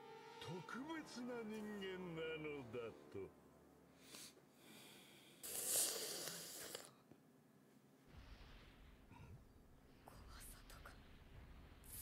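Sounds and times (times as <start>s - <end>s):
faint whispery hisses: 4.0s - 7.0s, 8.9s - 12.0s.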